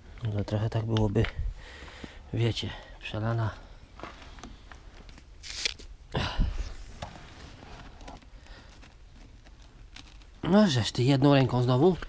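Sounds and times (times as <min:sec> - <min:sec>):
plastic bottle crackling: 0:04.0 - 0:06.0, 0:07.0 - 0:10.5.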